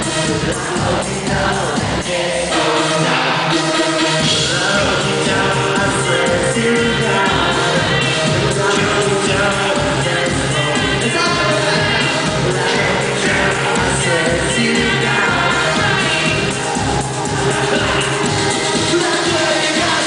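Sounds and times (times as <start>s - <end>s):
electropop band playing live: 0.0s - 20.0s
person singing into microphone: 0.0s - 20.0s.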